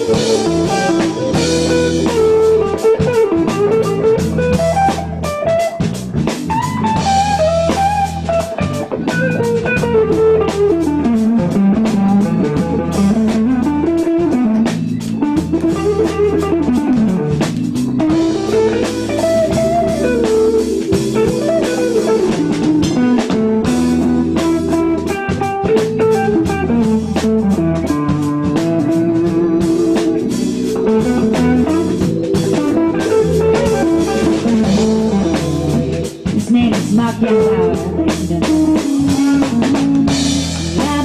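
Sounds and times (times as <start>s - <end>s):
bass guitar: 0.0s - 41.0s
drum kit: 0.0s - 41.0s
electric guitar sliding melody: 0.0s - 41.0s.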